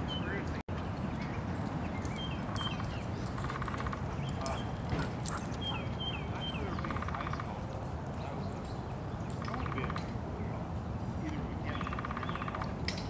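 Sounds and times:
birds chirping: 0.0 - 13.0
bird rattling call: 1.9 - 7.5.

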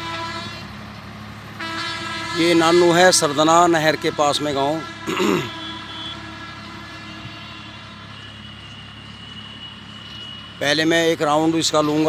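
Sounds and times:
distant diesel tractor engine: 0.0 - 12.0.

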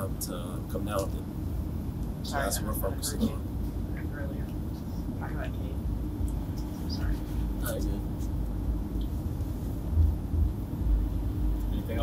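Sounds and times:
constant hum: 0.0 - 12.0
low rumble: 1.2 - 12.0
faint voices: 2.2 - 5.8, 6.4 - 8.2.

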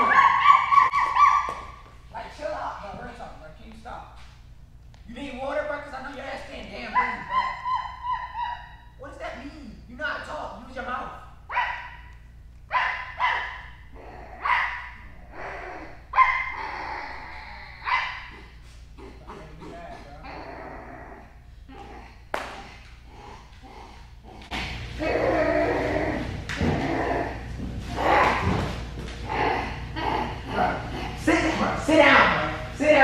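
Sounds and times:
woman imitating dog barks: 0.0 - 1.6, 7.0 - 8.8.

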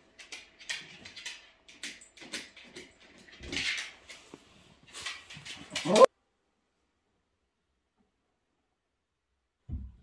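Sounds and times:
small rustling noises: 0.0 - 6.1
dog whining: 5.7 - 6.1.

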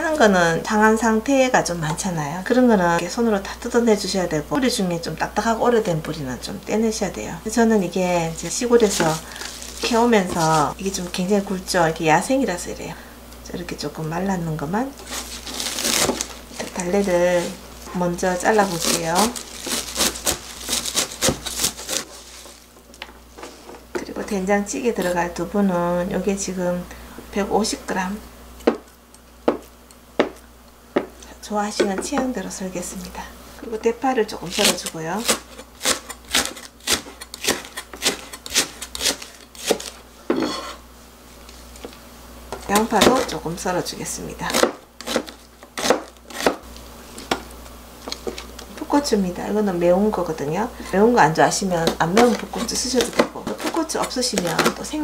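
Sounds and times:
knife chopping chives on a board: 34.6 - 39.9, 44.5 - 46.6.

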